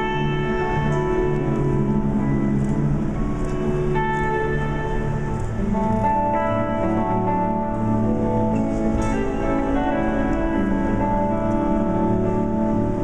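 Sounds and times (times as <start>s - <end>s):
electric guitar: 0.0s - 13.0s.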